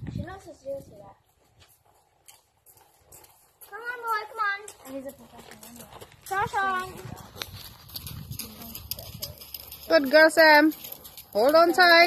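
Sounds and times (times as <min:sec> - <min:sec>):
hoofbeats on gravel: 0:00.1 - 0:12.0.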